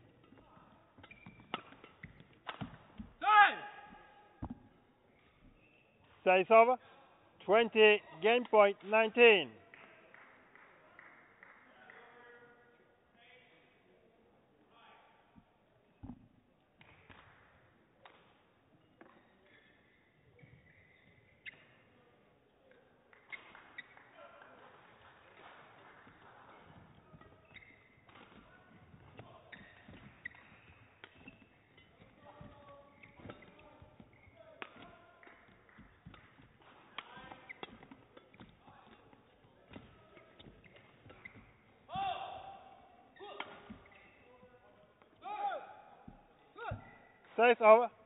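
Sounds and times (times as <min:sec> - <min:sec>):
shoe squeaks: 0:00.0 - 0:02.3, 0:03.7 - 0:06.1, 0:18.9 - 0:22.0, 0:23.3 - 0:24.1, 0:26.8 - 0:42.0, 0:43.1 - 0:44.6
racket hitting shuttlecock: 0:01.0 - 0:03.1, 0:26.8 - 0:39.0
footfalls on court mat: 0:03.9 - 0:04.8.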